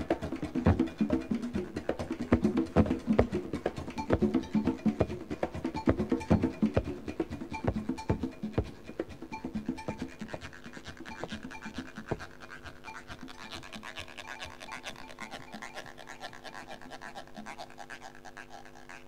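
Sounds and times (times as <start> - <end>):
scraping percussion strokes: 0.0 - 19.0.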